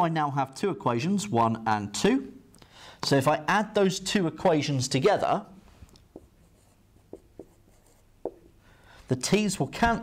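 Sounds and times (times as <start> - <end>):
marker tapping on whiteboard: 6.1 - 8.6.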